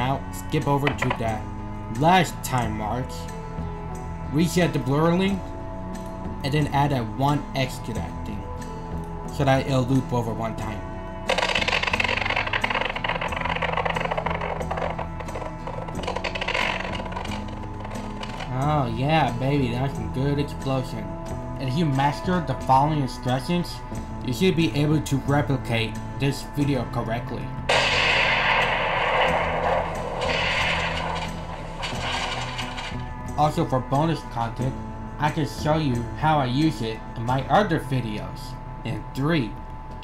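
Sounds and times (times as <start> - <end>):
background music: 0.0 - 40.0
explosion blast: 27.7 - 33.0.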